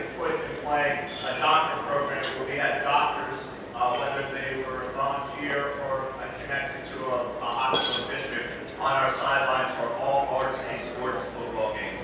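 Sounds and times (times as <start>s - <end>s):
people talking: 0.0s - 12.0s
glass clinking: 7.5s - 8.2s.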